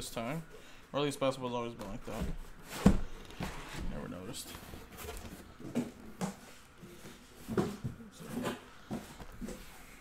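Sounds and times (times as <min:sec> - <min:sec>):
boxes knocking and scuffing: 0:01.8 - 0:10.0.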